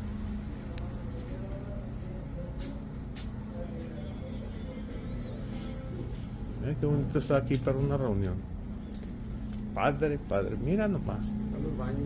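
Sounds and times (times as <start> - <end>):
faint indistinct voices: 0.0 - 10.0
low background hum: 0.0 - 12.0.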